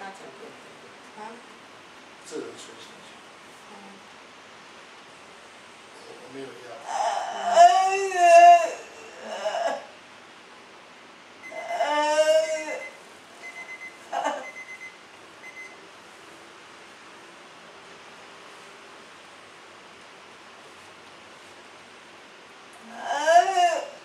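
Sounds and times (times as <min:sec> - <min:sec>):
elderly woman moaning: 0:06.8 - 0:09.9, 0:11.5 - 0:13.0, 0:22.8 - 0:24.0
faint high beeps: 0:12.8 - 0:15.8.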